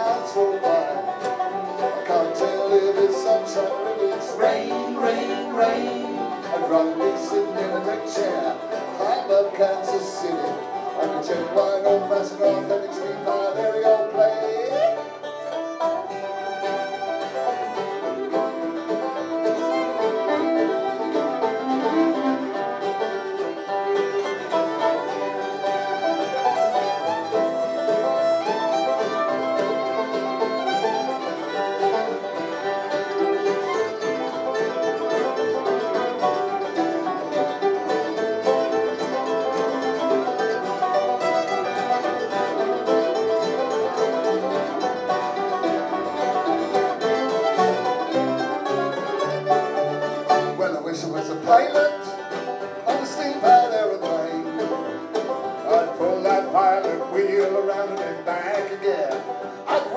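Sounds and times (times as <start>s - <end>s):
upright bass: 0.0s - 16.1s, 29.1s - 59.9s
acoustic guitar: 0.0s - 59.9s
banjo: 0.0s - 59.9s
fiddle: 0.0s - 59.9s
mandolin: 0.0s - 59.9s.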